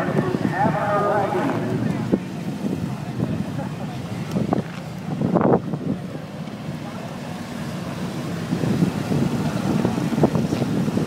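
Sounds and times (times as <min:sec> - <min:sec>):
wind noise on microphone: 0:00.0 - 0:06.2, 0:08.1 - 0:11.0
car engine idling: 0:00.0 - 0:11.0.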